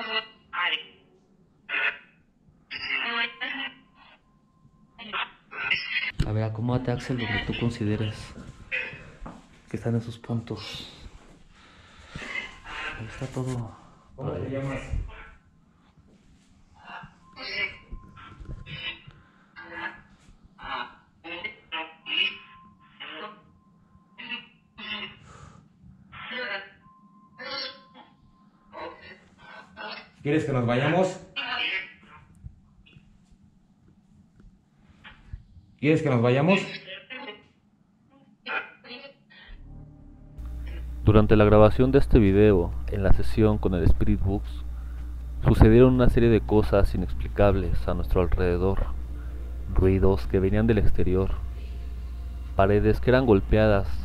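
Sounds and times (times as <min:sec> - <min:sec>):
faint steady tone: 0:21.0 - 0:29.4, 0:39.5 - 0:54.0.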